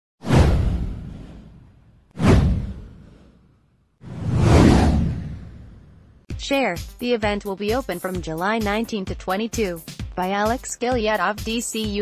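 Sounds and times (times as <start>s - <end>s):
whoosh with deep rumble: 0.2s - 6.3s.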